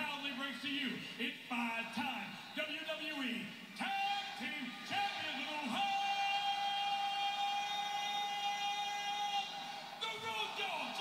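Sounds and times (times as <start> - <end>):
man shouting into a microphone: 0.0 - 11.0.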